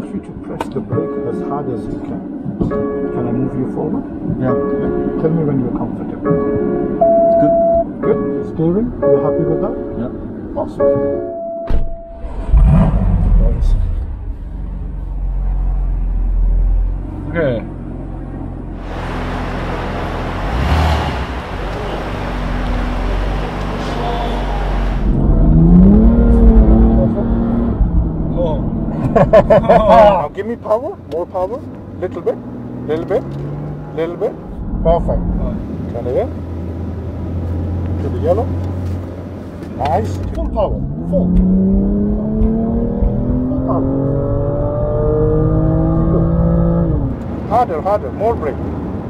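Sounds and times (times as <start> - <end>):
road noise: 0.0 - 49.0
car engine accelerating: 12.0 - 49.0.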